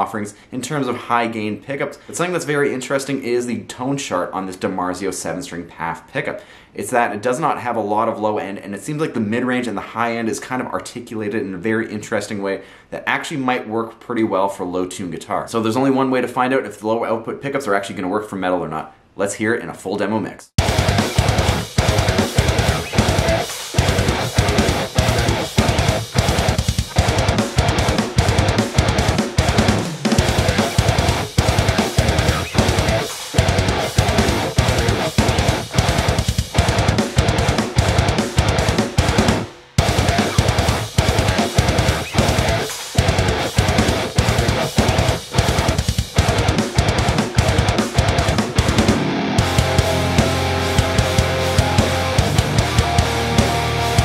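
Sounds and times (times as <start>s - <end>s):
drums: 20.6s - 54.0s
heavy metal electric guitar riffs: 20.6s - 54.0s.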